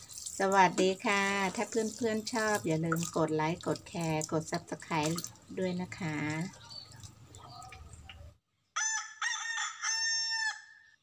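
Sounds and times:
rooster crowing: 0:08.8 - 0:11.0.

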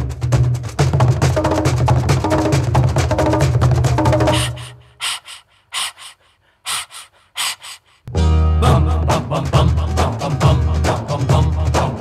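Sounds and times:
rhythmic breathy panting: 0:04.2 - 0:08.1.

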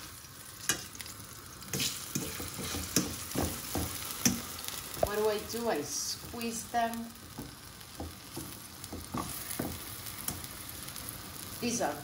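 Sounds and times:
light sizzle: 0:00.0 - 0:12.0
fork tapping enamel pan: 0:01.8 - 0:04.5.

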